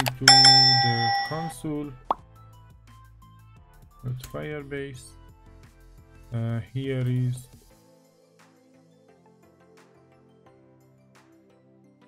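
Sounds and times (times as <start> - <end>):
keyboard clicks: 0.0 - 0.4
soft background music: 2.8 - 12.0.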